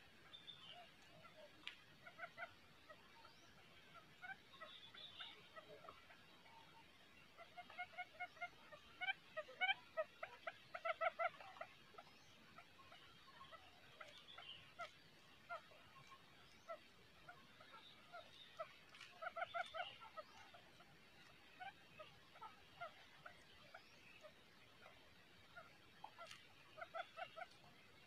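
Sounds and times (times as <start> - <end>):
quail calling: 0.0 - 28.0.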